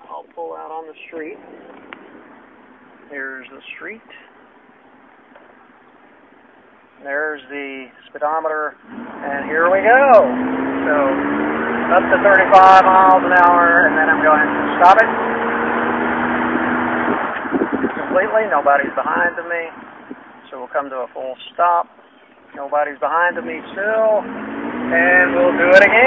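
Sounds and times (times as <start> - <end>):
road and tyre noise: 0.0 - 26.0
truck cab noise: 0.0 - 26.0.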